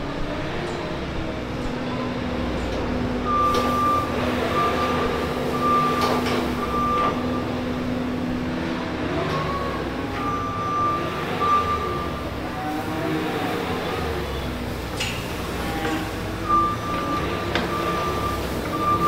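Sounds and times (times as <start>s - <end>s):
tractor engine running: 0.0s - 19.0s
backup alarm beeps: 3.2s - 7.7s, 9.4s - 12.4s, 16.3s - 19.0s.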